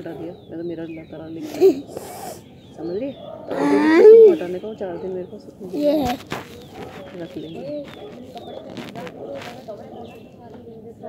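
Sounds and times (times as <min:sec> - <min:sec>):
quieter voices: 0:00.0 - 0:11.0.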